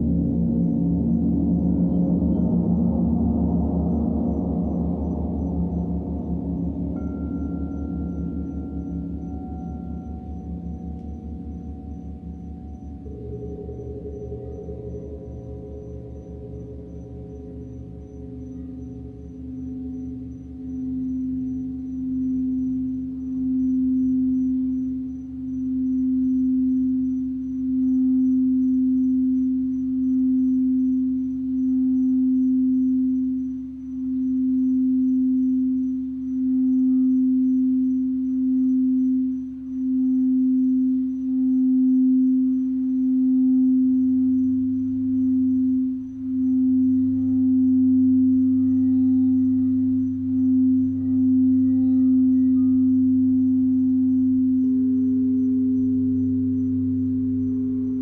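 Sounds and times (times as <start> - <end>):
higher bowl tone: 0.0 - 58.0
lower hum: 0.0 - 58.0
singing bowl tone: 0.0 - 58.0.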